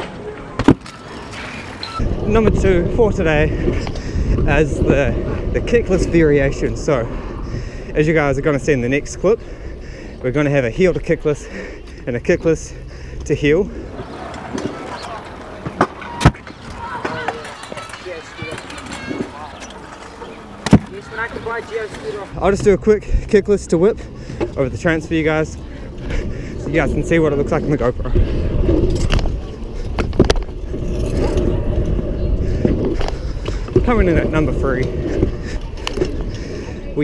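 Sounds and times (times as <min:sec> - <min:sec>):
wheels rolling on concrete: 0:13.8 - 0:22.6, 0:24.4 - 0:37.0
scooter wheels rolling on concrete: 0:13.9 - 0:22.6.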